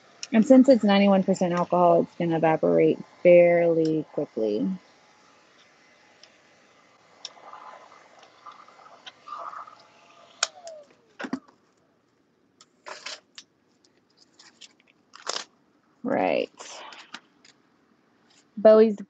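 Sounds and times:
heat gun running: 0.0s - 11.3s
fan whine slowing: 0.0s - 11.6s.

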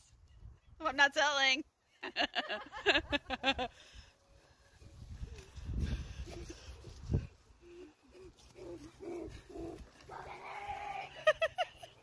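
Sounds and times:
person laughing: 10.8s - 12.0s.

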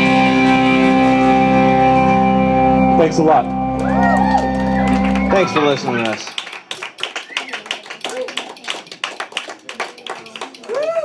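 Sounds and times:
scattered handclaps: 3.8s - 11.0s
people talking: 5.3s - 6.4s.

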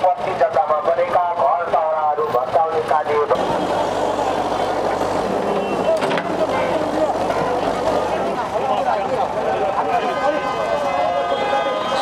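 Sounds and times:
crowd chatter: 0.0s - 12.0s
voices: 0.0s - 12.0s
diesel engine running: 2.6s - 11.2s.

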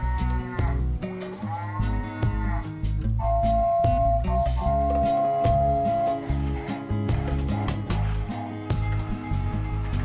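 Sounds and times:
children's music with steady beat: 0.0s - 10.0s.

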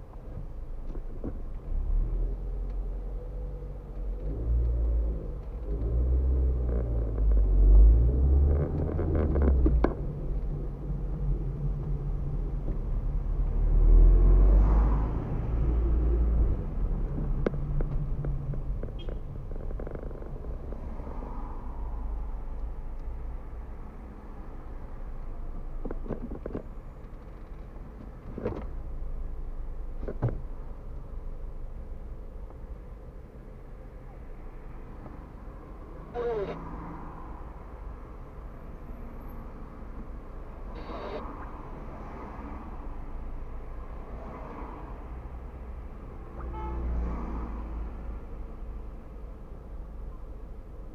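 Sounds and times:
car engine and road rumble: 0.0s - 50.9s.

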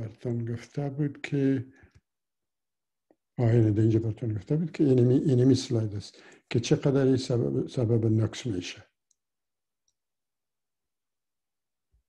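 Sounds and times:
man speaking: 0.0s - 1.8s, 3.4s - 8.8s.

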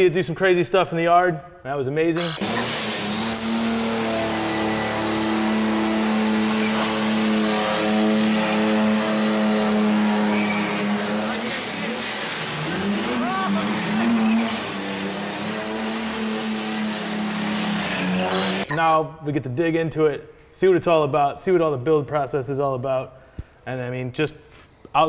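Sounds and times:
diesel engine revving high: 2.2s - 18.7s.

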